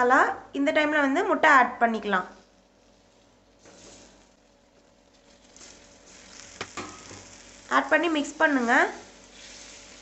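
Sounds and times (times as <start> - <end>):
spices sizzling in oil: 2.8 - 10.0.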